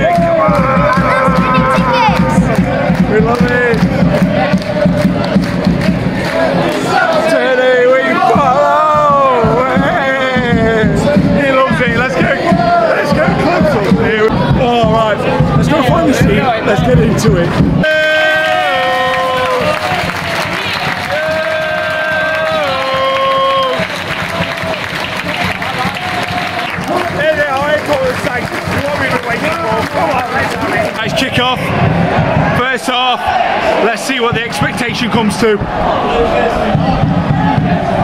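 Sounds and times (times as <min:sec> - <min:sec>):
crowd clapping cheering and singing: 0:00.0 - 0:38.0.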